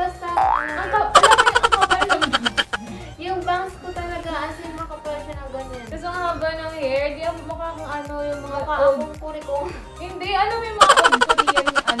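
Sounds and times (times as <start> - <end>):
background music: 0.0 - 12.0
fluttering spring boing: 0.4 - 1.2.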